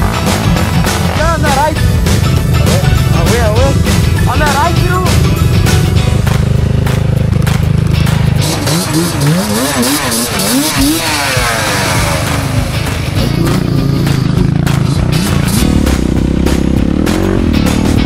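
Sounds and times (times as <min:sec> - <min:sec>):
motorcycle engines revving: 0:00.0 - 0:18.0
music: 0:00.0 - 0:18.0.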